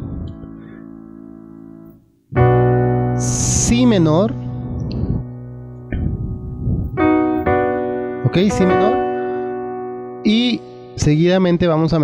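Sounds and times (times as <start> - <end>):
piano chords: 0.0 - 12.0.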